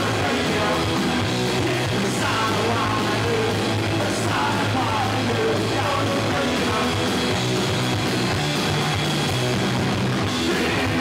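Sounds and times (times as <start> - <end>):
distorted electric guitars: 0.0 - 11.0
drums: 0.0 - 11.0.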